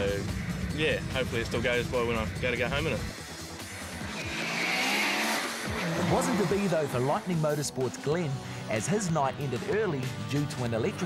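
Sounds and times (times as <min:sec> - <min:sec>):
car engine accelerating hard: 0:03.0 - 0:07.7.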